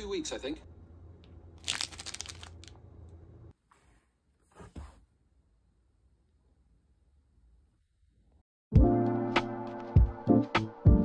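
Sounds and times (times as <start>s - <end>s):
plastic wrapper crinkling: 1.6s - 2.8s.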